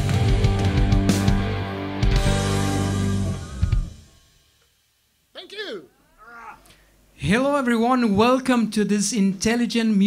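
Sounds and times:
man speaking through pa: 5.4 - 10.0.

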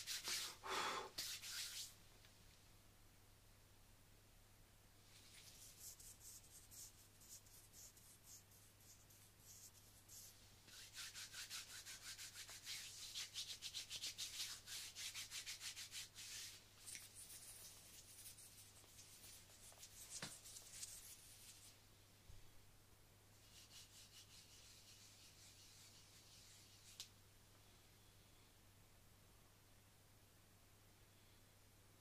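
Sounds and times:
palms rubbing together: 0.0 - 0.6, 1.2 - 1.9, 5.1 - 21.8, 23.4 - 27.1.

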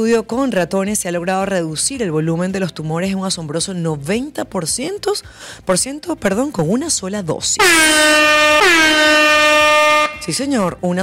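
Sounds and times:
loud air horn blast: 7.6 - 10.4.

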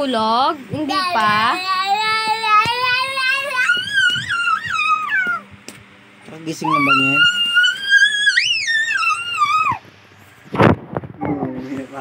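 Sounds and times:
toddler crying: 1.0 - 5.5, 6.6 - 9.8.

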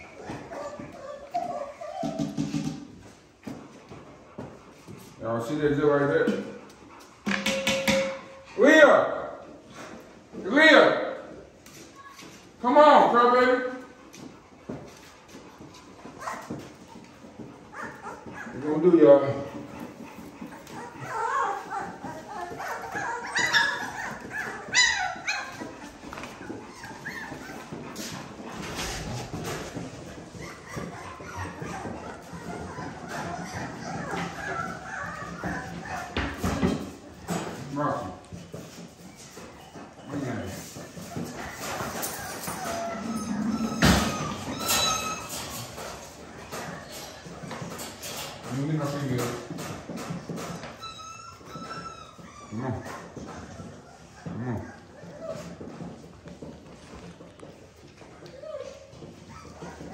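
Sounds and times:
puppies whimpering and yelping: 0.0 - 3.6, 13.7 - 59.9.

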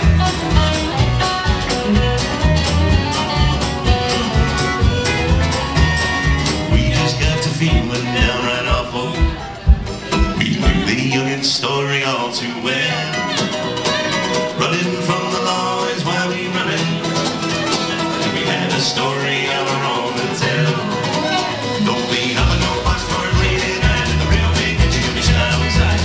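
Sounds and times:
plucked upright bass: 0.0 - 11.4, 12.6 - 26.0
sustained melodic lead line: 0.0 - 11.6
strummed acoustic guitar: 0.0 - 26.0.

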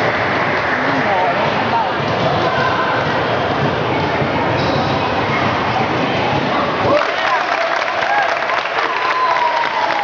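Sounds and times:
spectators talking: 0.0 - 10.0
scattered clapping: 6.8 - 10.0.

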